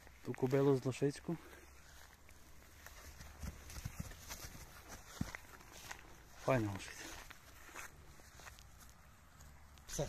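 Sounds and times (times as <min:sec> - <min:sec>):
hooves stepping on grass: 0:00.0 - 0:10.0.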